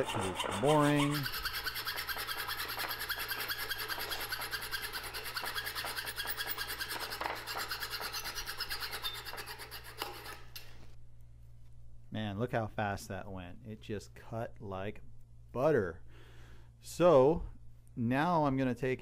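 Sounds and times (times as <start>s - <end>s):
hacksaw rasping through metal: 0.0s - 10.5s.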